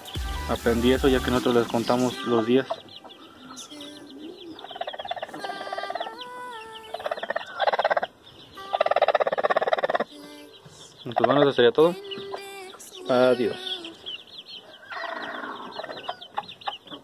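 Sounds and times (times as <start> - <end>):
hen calling: 0.0 - 17.0.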